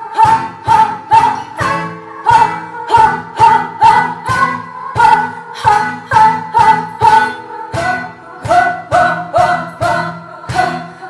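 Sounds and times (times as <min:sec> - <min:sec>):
flamenco guitar: 0:00.0 - 0:11.0
cajon drumming: 0:00.1 - 0:11.0.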